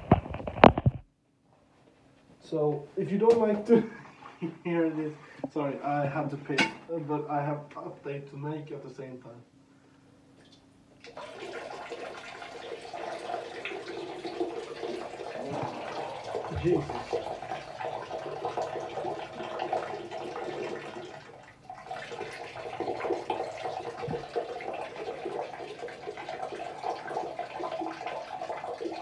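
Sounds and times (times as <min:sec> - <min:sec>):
urine stream splashing into water: 0:11.1 - 0:29.0.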